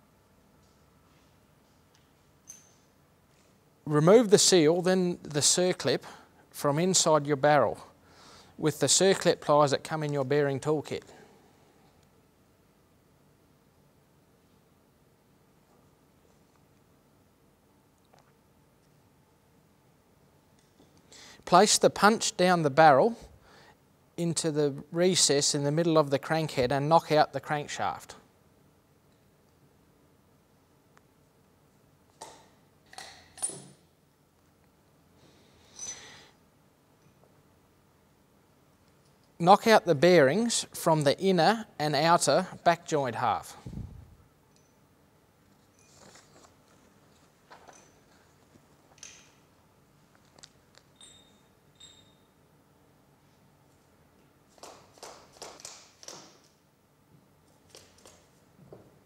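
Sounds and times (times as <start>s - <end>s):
small steel parts clinking: 50.8s - 52.3s.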